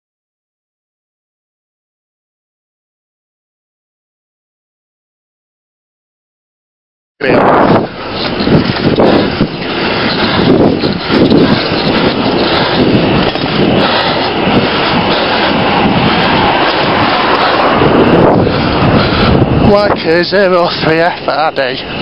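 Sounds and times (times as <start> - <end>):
wind buffeting microphone: 7.2 - 22.0.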